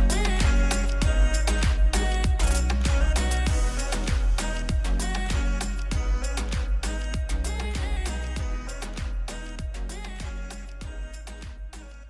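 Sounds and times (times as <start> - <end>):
percussive hits: 0.0 - 10.5
held bass line: 0.0 - 12.0.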